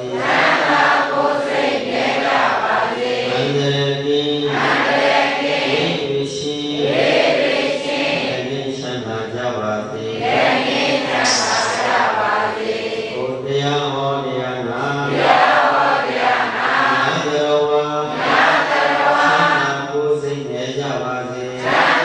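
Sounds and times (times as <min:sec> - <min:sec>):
monk chanting into a microphone: 0:00.0 - 0:01.6, 0:02.2 - 0:22.0.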